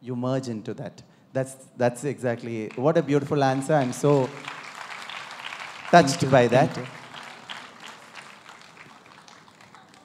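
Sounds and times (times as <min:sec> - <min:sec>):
audience clapping: 0:02.4 - 0:10.0.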